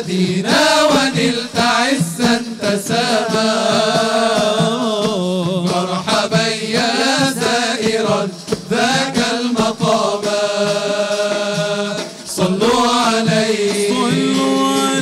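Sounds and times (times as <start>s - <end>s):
men singing together: 0.0s - 15.0s.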